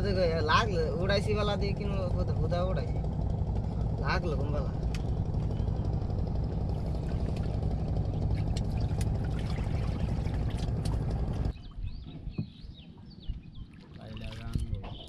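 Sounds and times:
steady low rumble: 0.0 - 12.4.

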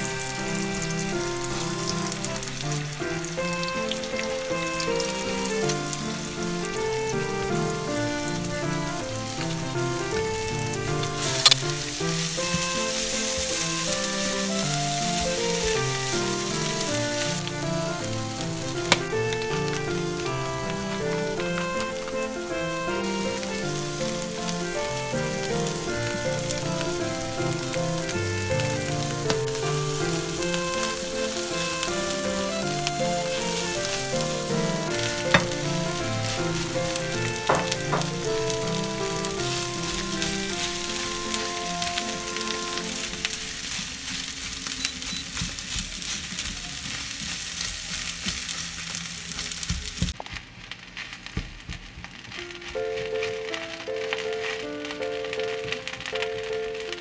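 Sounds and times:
background music: 0.0 - 44.4
food sizzling in a frying pan: 0.0 - 57.0
spatula tapping on pan: 35.3 - 35.6, 37.5 - 38.2.

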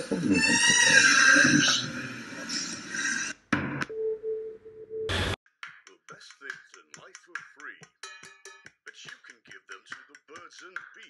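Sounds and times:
man talking: 5.9 - 7.9.

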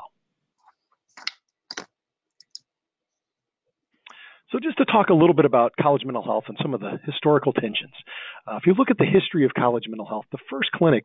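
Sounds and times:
computer mouse clicks: 1.1 - 2.6.

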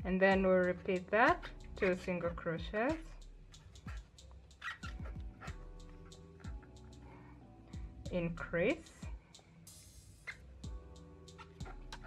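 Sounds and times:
soft music with held tones: 0.0 - 12.0.

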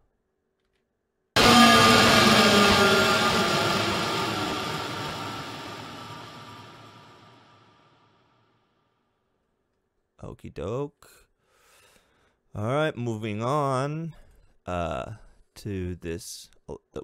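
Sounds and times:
distorted downward sliding drone: 1.4 - 7.7.

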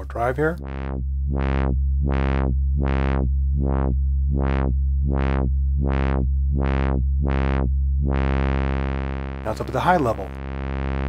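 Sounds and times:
synthesizer filter sweeps: 0.0 - 11.0.

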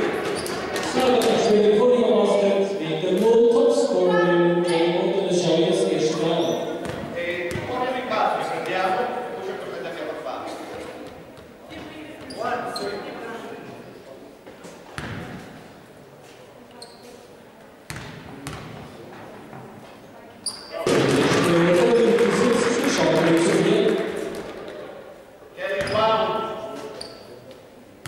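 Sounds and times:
echoing voices: 0.0 - 14.4, 18.3 - 28.0
basketball bouncing on floor: 6.8 - 7.8, 17.9 - 18.8.

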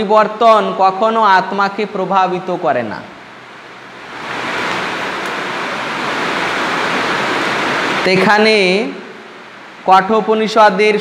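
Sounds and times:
steady hiss: 0.1 - 11.0.

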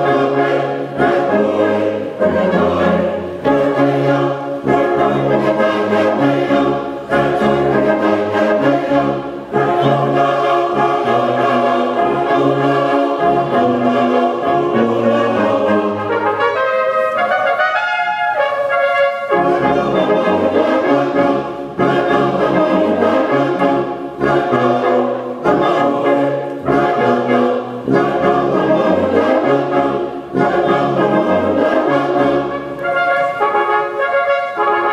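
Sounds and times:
brass band playing chords: 0.0 - 34.9.

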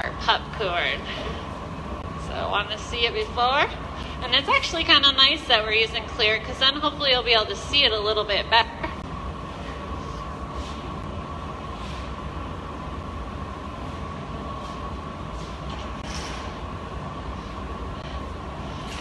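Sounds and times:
furnace roaring: 0.0 - 19.0.

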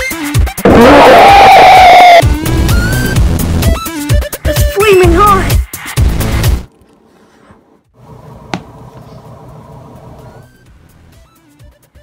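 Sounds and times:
background music held tones: 7.9 - 12.0.

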